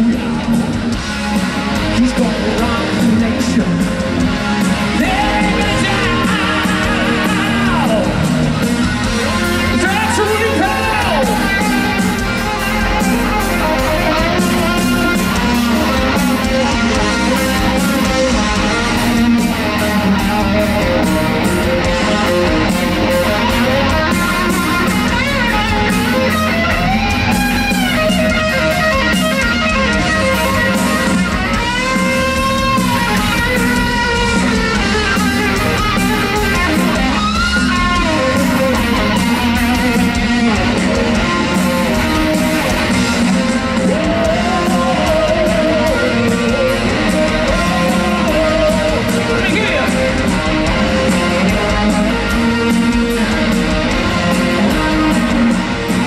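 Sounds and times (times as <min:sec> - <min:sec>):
drums and bass: 0:00.0 - 0:56.0
lead electric guitar: 0:00.0 - 0:56.0.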